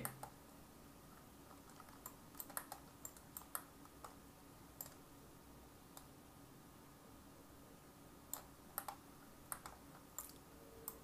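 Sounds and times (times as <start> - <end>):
computer keys and mouse clicking: 0.0 - 0.4, 1.4 - 5.0, 5.9 - 6.1, 8.3 - 11.0.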